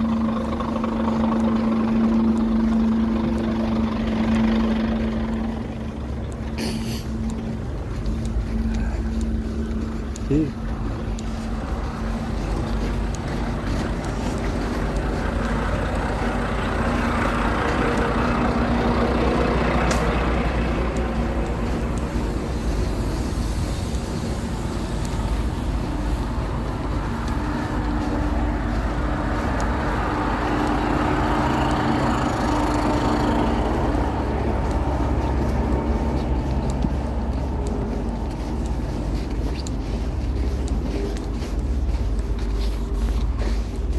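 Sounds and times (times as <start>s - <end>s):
diesel truck engines idling: 0.0s - 43.9s.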